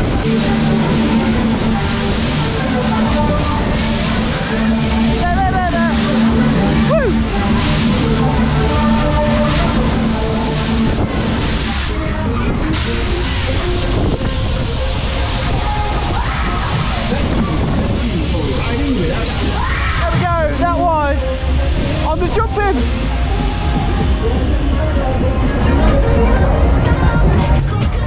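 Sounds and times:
fairground ride music: 0.0s - 28.0s
wind rushing over microphone: 0.0s - 28.0s.

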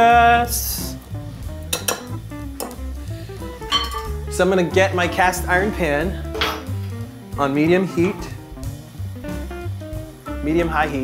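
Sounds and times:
plucked guitar music: 0.6s - 11.0s
whisk clinking glass bowl: 3.7s - 4.1s.

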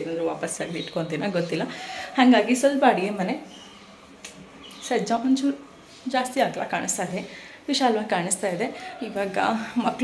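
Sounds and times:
woman talking: 0.0s - 3.5s, 4.7s - 10.0s.

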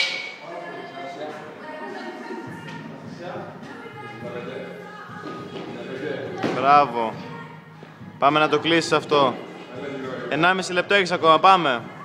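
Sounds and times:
sharp metal clank: 0.0s - 0.4s
background music: 0.0s - 12.0s
voices echoing: 0.0s - 12.0s.

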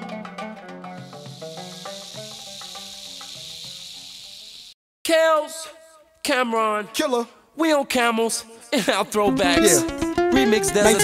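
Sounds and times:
snake hissing: 1.0s - 4.8s.

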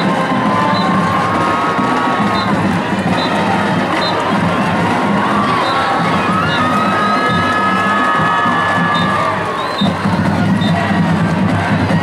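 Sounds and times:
stadium crowd cheering: 0.0s - 12.0s
whoops and whistles: 0.6s - 1.1s, 5.5s - 10.0s.

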